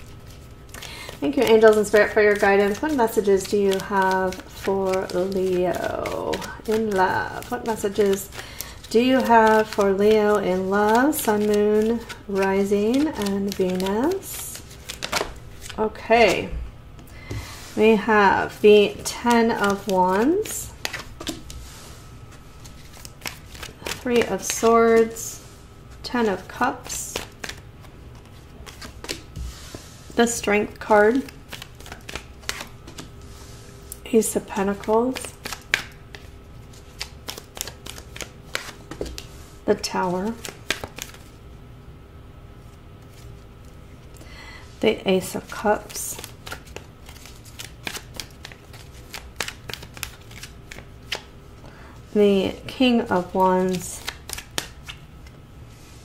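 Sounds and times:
tarot cards clicking: 0:00.7 - 0:15.8, 0:18.5 - 0:21.6, 0:30.8 - 0:33.1, 0:34.7 - 0:36.3, 0:36.9 - 0:39.3, 0:40.2 - 0:41.3, 0:45.5 - 0:51.3, 0:53.6 - 0:55.0.

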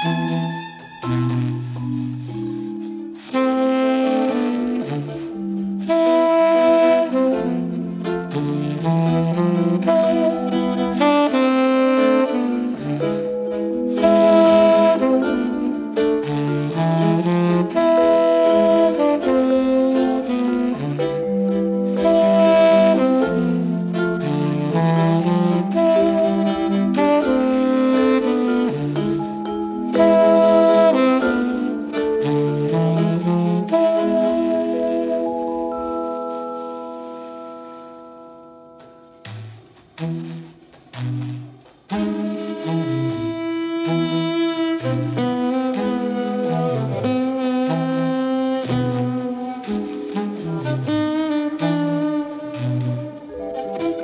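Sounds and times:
instrumental jazz: 0:00.0 - 0:54.0
tenor saxophone: 0:00.0 - 0:54.0.

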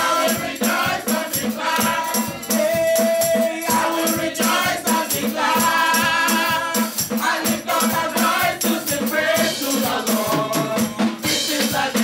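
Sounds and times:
backing singers: 0:00.0 - 0:12.0
drum kit beat: 0:00.0 - 0:12.0
lead singer singing: 0:01.0 - 0:12.0.

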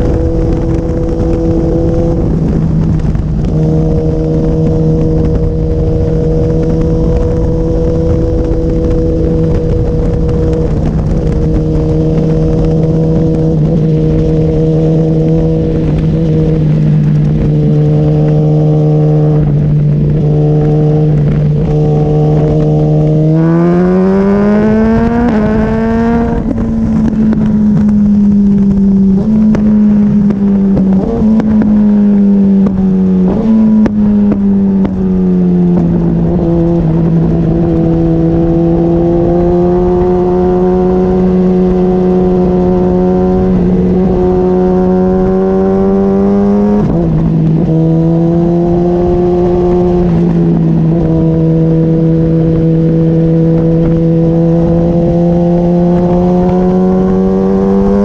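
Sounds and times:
motorcycle engine accelerating: 0:00.0 - 0:58.0
rushing wind and road noise: 0:00.0 - 0:58.0.

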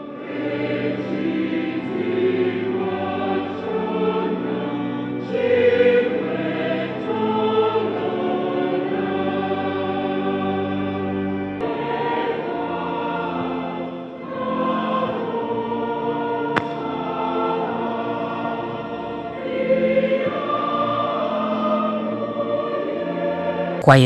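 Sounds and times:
mixed choir singing: 0:00.0 - 0:24.0.

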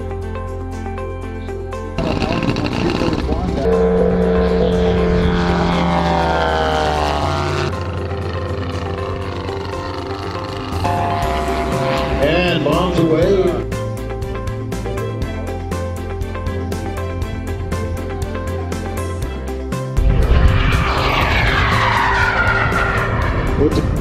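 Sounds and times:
background music: 0:00.0 - 0:24.0
model airplane engine flying past: 0:02.0 - 0:13.6, 0:20.0 - 0:24.0.

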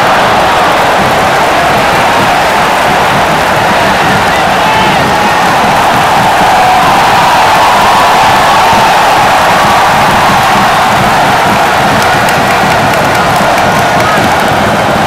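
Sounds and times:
crowd singing together: 0:00.0 - 0:12.2
stadium crowd cheering: 0:00.0 - 0:15.0.

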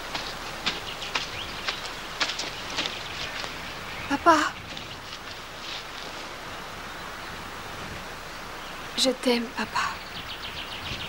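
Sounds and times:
low hiss of outdoor ambience: 0:00.0 - 0:11.0.

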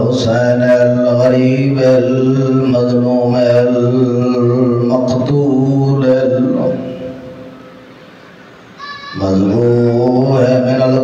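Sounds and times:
man chanting into a microphone: 0:00.0 - 0:07.5, 0:08.8 - 0:11.0.

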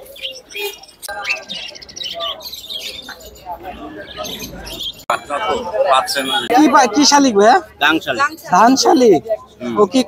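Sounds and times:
budgerigars chirping and chattering: 0:00.0 - 0:05.2.

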